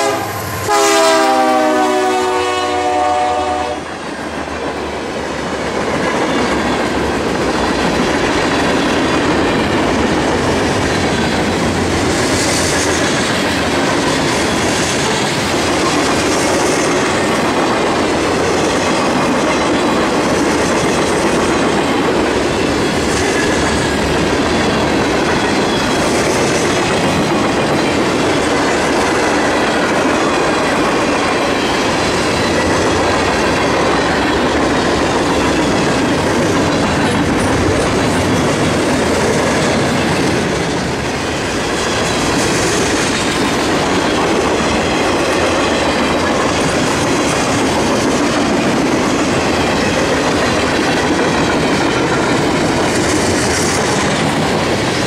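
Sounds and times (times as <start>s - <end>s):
freight train wheels on rails: 0.0s - 55.0s.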